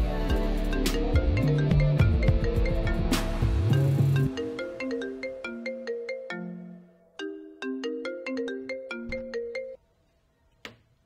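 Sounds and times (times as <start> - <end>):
marimba ringtone: 0.3 - 9.8.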